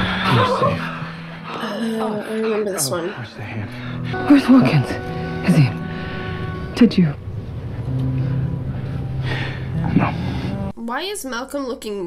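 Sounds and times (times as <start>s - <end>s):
low held drone note: 3.6s - 10.7s.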